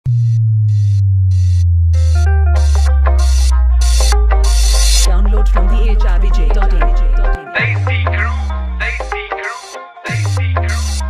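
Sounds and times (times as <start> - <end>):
deep bass tone sliding down: 0.0 - 9.3.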